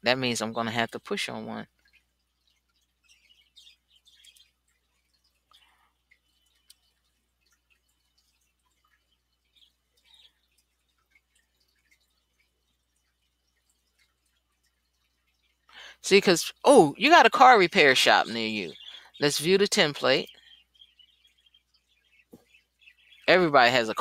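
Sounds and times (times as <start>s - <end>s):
soft ticks and clicks: 1.7s - 15.8s.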